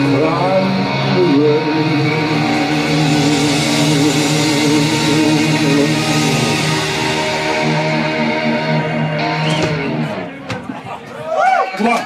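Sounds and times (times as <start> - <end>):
lower guitar and bass tones: 0.0 - 10.7.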